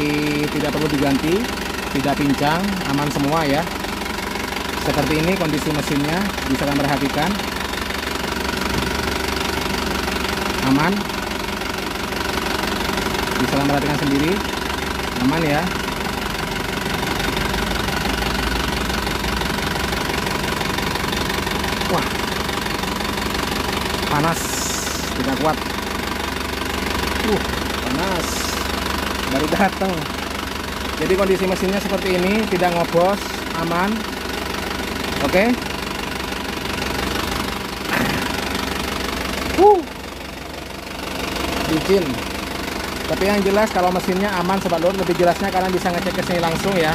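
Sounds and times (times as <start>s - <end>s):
person talking: 0.0s - 3.8s, 4.8s - 7.5s, 10.6s - 11.2s, 13.4s - 14.5s, 15.2s - 15.8s, 21.8s - 22.3s, 24.0s - 25.7s, 27.2s - 30.1s, 31.0s - 34.0s, 35.2s - 35.6s, 37.9s - 38.3s, 39.5s - 40.0s, 41.6s - 42.2s, 43.1s - 46.9s
diesel engine idling: 0.0s - 46.9s.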